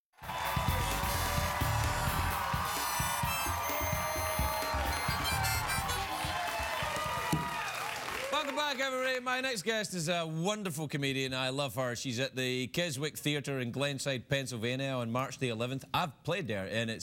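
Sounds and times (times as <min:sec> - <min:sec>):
backing music with low beat: 0:00.2 - 0:07.2
harmonica playing: 0:00.8 - 0:06.8.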